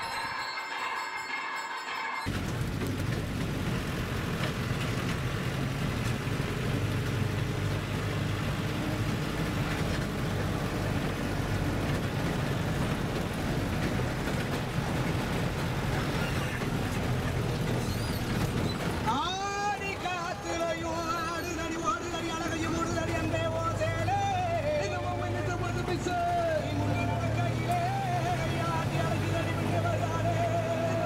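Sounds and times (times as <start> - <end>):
vehicle engine and road rumble: 2.3 - 31.0.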